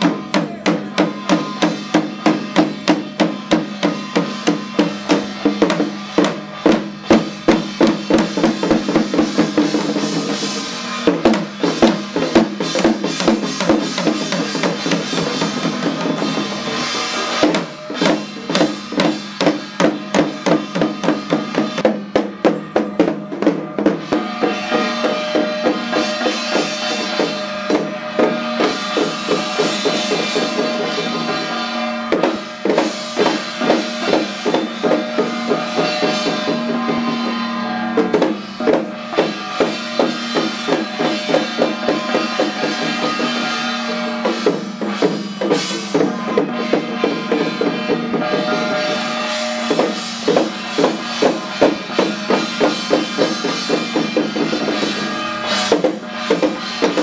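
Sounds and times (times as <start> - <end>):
frame drums beaten fast: 0.0 - 57.0.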